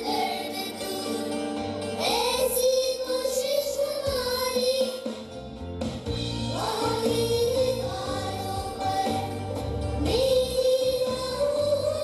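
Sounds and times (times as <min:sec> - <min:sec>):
instrumental backing: 0:00.0 - 0:12.0.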